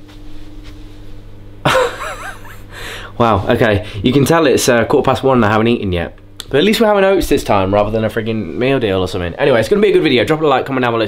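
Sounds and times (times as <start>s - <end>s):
faint low hum: 0.0s - 11.0s
man laughing loudly: 1.6s - 2.8s.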